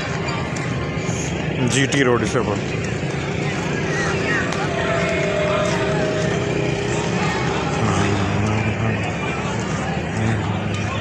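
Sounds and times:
faint voices: 0.0 - 11.0
motorcycle engine running: 0.0 - 11.0
street noise: 0.0 - 11.0.

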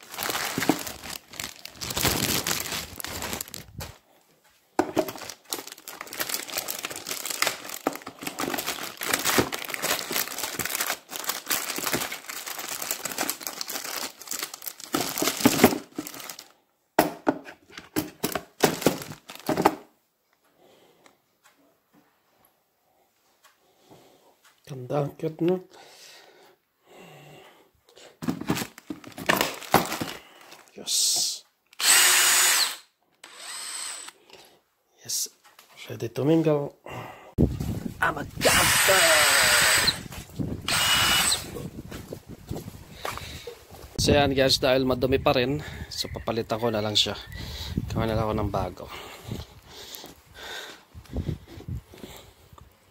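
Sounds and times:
plastic wrapping crinkling: 0.0 - 4.0, 4.8 - 16.6, 18.6 - 19.8, 28.2 - 30.8
cordless drill motor whine: 31.8 - 34.2, 38.4 - 41.6.

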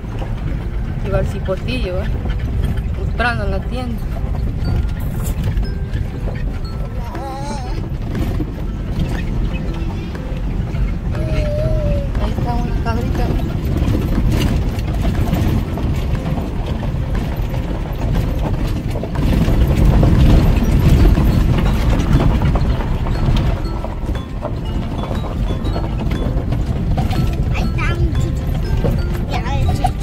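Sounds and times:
rattles and knocks: 0.0 - 30.0
vehicle driving on dirt road: 0.0 - 30.0.

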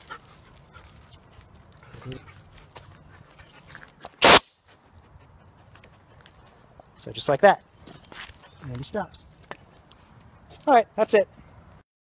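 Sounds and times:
compressed air can hiss: 4.2 - 4.6.

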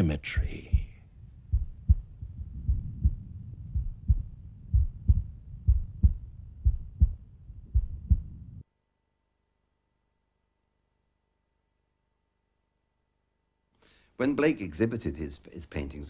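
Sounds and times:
heartbeat thuds: 0.4 - 8.6.

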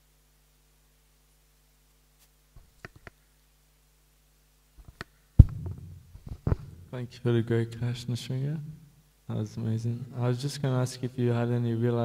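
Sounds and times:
low thumps on microphone: 4.8 - 6.9
faint low rumbling: 5.4 - 10.1.

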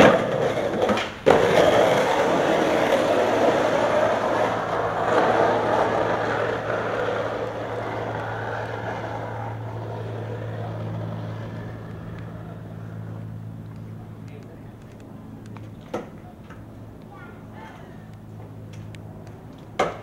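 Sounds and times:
skateboard wheels rolling on asphalt: 0.0 - 17.0, 18.2 - 20.0
low hum: 0.0 - 19.8.

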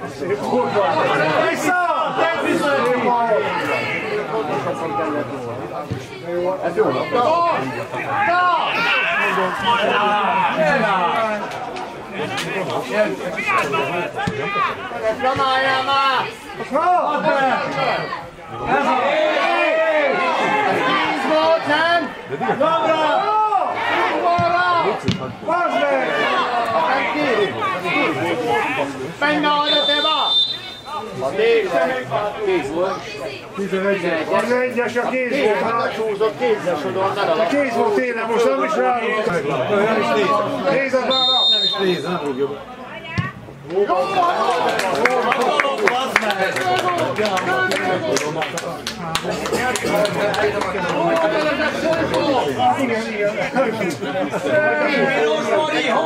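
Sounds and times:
men calling and shouting: 0.0 - 56.0.

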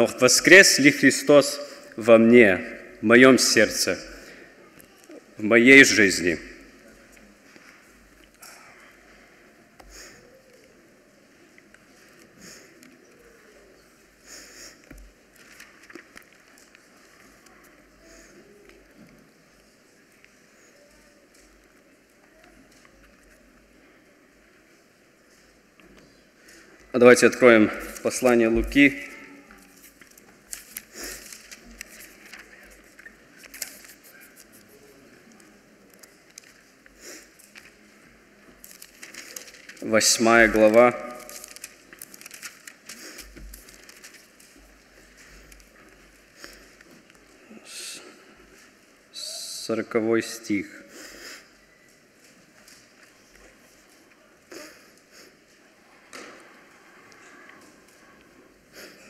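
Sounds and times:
paper pages rustling: 14.8 - 18.0, 29.5 - 47.3.

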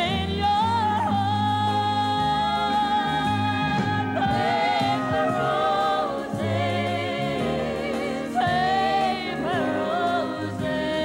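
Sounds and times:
band accompaniment: 0.0 - 11.0
woman singing into microphone: 0.0 - 11.0.

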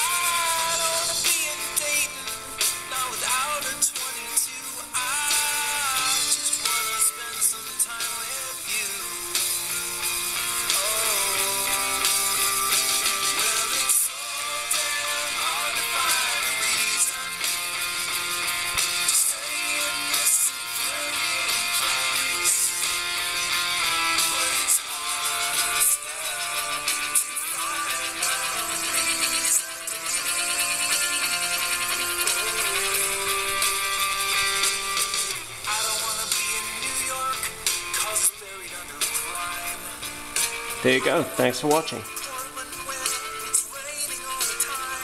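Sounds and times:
song through tesla coil sparks: 0.0 - 45.0.

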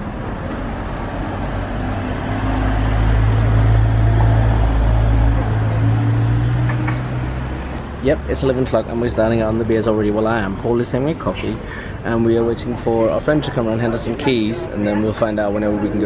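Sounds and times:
vehicle engine rumble: 0.0 - 13.4.

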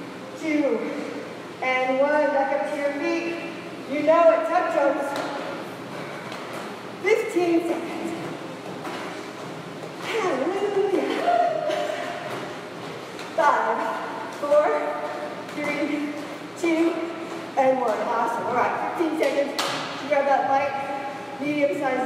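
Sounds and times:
person talking: 13.3 - 22.0.

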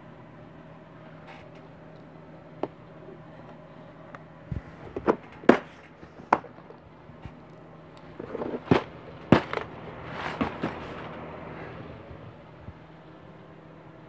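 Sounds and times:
rustling: 8.1 - 11.2.

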